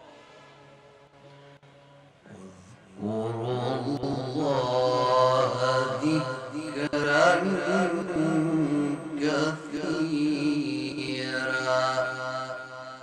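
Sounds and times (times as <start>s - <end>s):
man chanting melodically: 2.0s - 13.0s.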